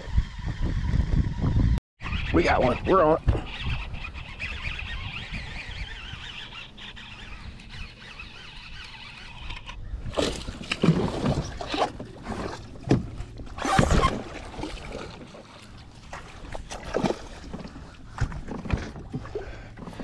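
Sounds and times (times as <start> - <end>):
fishing reel whirring: 2.2 - 9.9.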